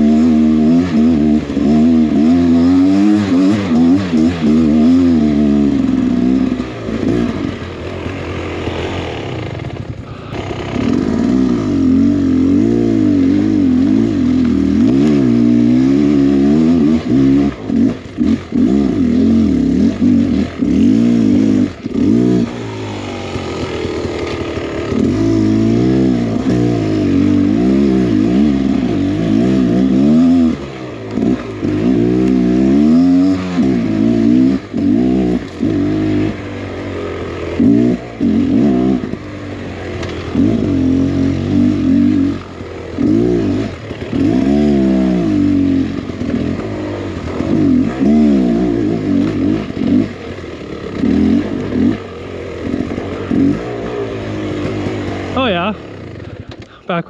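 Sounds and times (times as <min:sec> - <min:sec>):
dirt bike two-stroke engine revving: 0:00.0 - 0:57.0.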